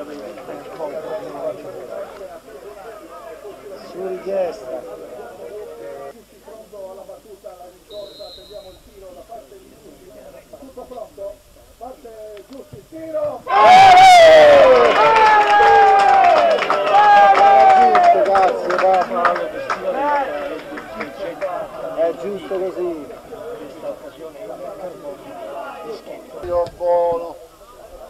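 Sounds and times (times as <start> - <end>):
men shouting together: 13.4 - 18.6.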